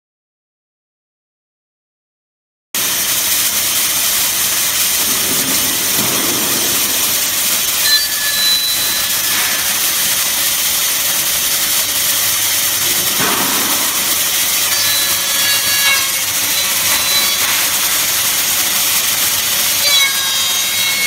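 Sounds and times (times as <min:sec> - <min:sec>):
milling machine hissing: 0:02.8 - 0:21.0
high whistle: 0:06.6 - 0:10.4, 0:12.8 - 0:21.0.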